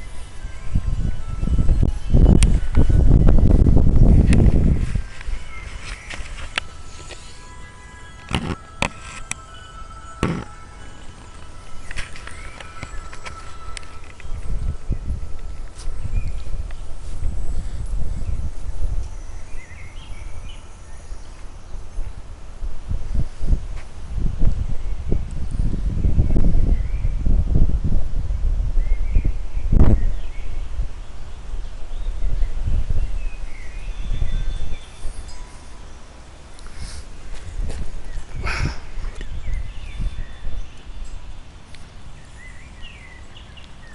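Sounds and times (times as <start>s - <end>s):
wind buffeting microphone: 0.0s - 43.9s.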